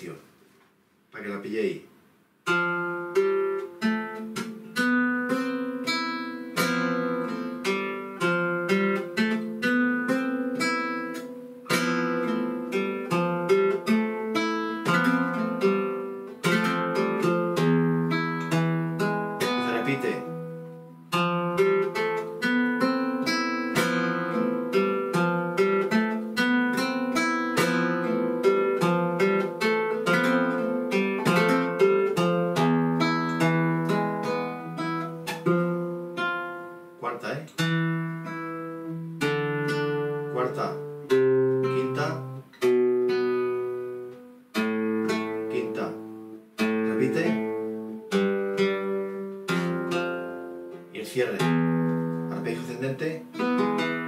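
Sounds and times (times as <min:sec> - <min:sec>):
flamenco guitar playing: 0:02.4 - 0:54.0.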